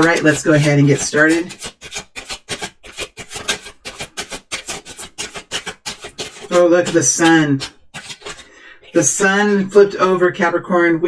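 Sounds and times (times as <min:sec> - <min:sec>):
cards being shuffled: 0:00.0 - 0:09.1.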